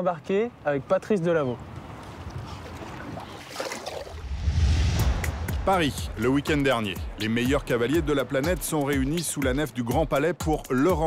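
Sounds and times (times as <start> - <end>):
water around a boat: 0.0 - 4.2
steady wind: 4.0 - 7.9.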